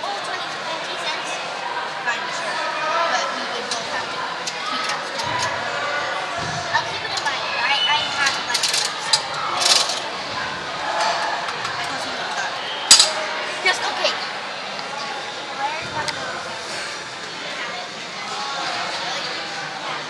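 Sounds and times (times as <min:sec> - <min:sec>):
indistinct voices in hall: 0:00.0 - 0:20.0.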